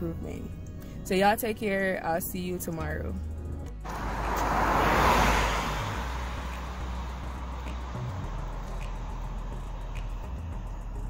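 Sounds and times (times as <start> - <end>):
car passing by: 3.8 - 11.0.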